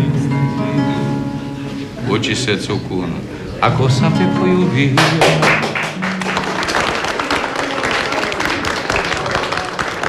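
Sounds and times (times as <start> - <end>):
crowd applauding: 5.0 - 10.0.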